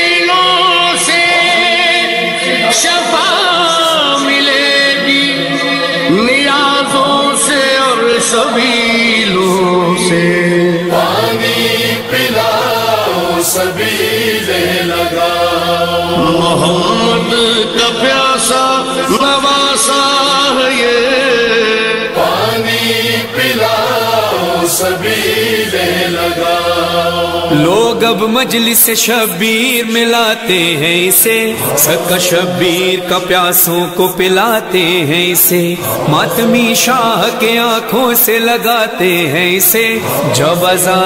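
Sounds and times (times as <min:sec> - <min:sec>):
person singing unaccompanied: 0:00.0 - 0:41.0
voices chanting: 0:08.2 - 0:19.7, 0:21.9 - 0:29.1, 0:30.5 - 0:41.0.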